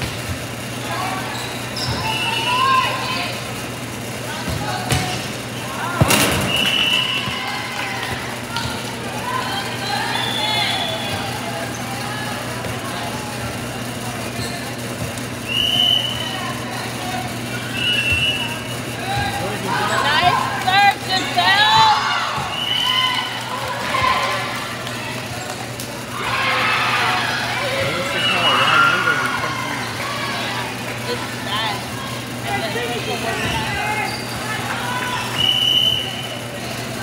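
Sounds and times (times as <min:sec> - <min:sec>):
people calling out and cheering: 0:00.8 - 0:03.6, 0:04.2 - 0:14.3, 0:15.5 - 0:37.0
sneakers squeaking on hardwood: 0:01.2 - 0:02.5, 0:33.2 - 0:35.4.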